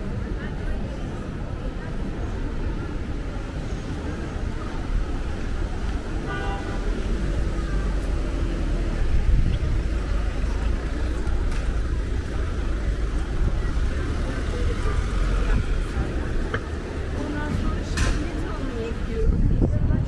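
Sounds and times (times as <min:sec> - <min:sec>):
low engine rumble: 0:00.0 - 0:20.0
voices in background: 0:00.0 - 0:20.0.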